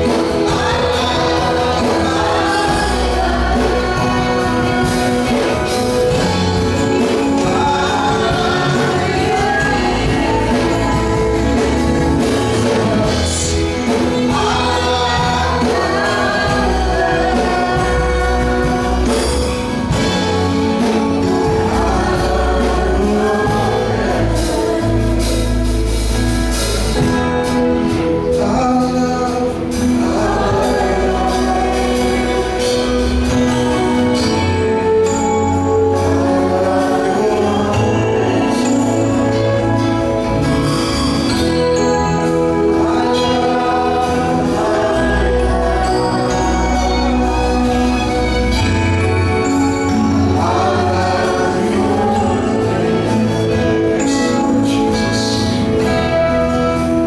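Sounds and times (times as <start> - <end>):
gospel band with voices singing: 0.0 - 57.0
guitars: 0.0 - 57.0
keyboard: 0.0 - 57.0
violin: 45.0 - 57.0.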